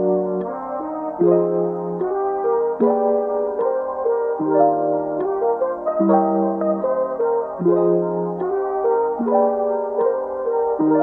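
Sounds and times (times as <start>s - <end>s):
sustained brass-like chords: 0.0s - 11.0s.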